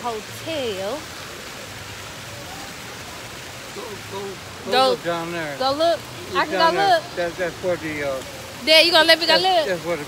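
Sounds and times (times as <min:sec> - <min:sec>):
fountain water splashing: 0:00.0 - 0:10.0.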